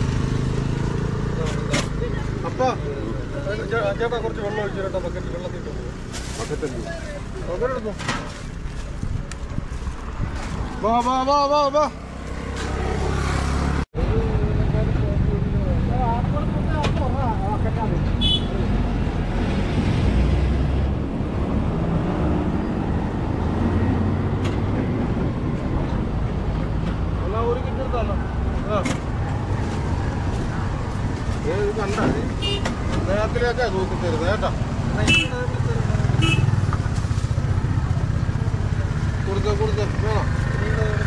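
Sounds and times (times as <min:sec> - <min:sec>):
road traffic rumble: 0:00.0 - 0:41.0
people talking: 0:14.0 - 0:18.1.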